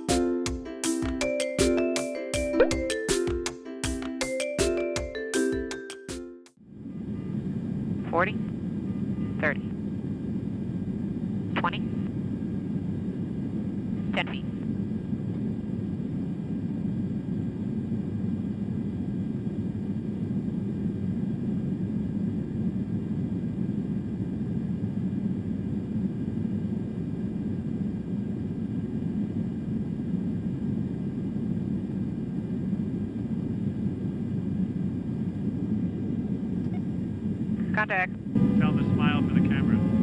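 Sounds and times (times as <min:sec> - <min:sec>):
aircraft engine and airflow rumble: 0:06.6 - 0:40.0.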